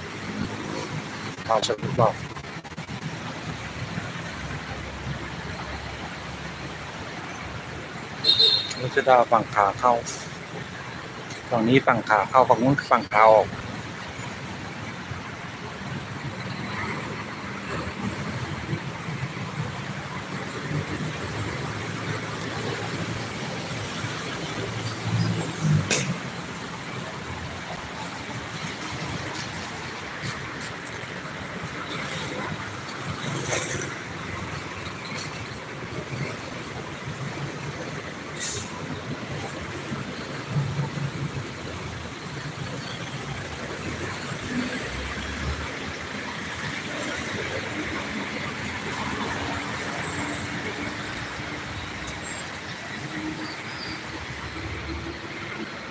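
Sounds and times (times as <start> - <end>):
cars and motorbikes passing: 0.0 - 55.9.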